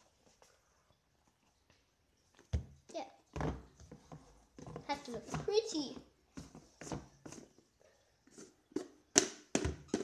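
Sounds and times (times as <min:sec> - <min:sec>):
girl's voice: 0:04.8 - 0:06.1.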